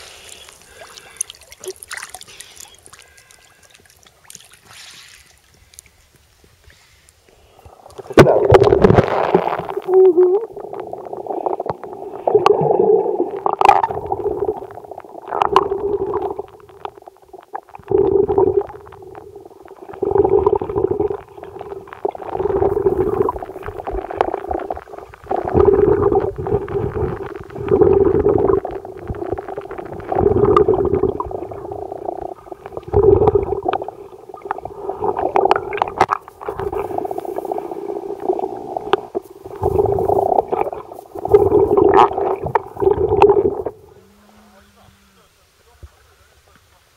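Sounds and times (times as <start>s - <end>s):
underwater gurgling: 0.0s - 6.0s, 7.6s - 45.4s
muffled underwater rumble: 7.7s - 46.9s.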